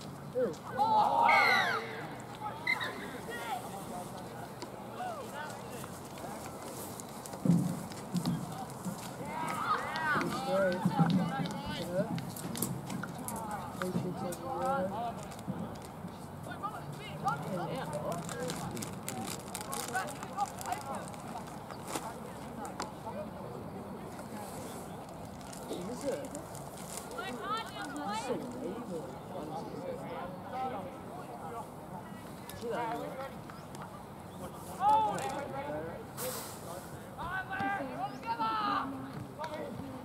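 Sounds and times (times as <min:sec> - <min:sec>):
people shouting and calling: 0:00.7 - 0:03.7.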